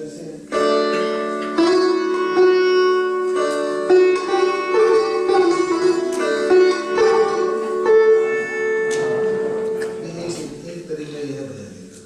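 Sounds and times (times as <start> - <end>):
sitar played solo: 0.0 - 10.3.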